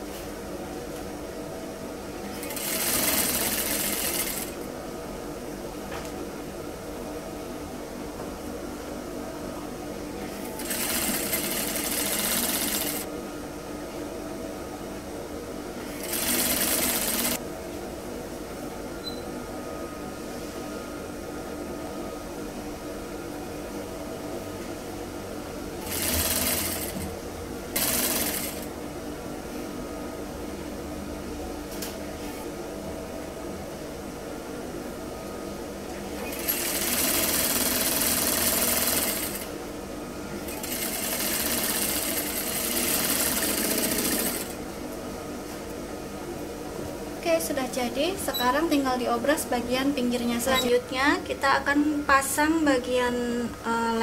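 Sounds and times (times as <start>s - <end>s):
sewing machine motor humming: 2.2s - 4.7s, 10.2s - 13.1s, 15.8s - 17.4s, 25.8s - 27.1s, 27.7s - 28.7s, 36.2s - 39.5s, 40.4s - 44.6s
sewing machine stitching: 2.3s - 4.6s, 10.4s - 13.1s, 15.9s - 17.4s, 25.8s - 27.0s, 27.8s - 28.6s, 36.2s - 39.5s, 40.5s - 44.6s.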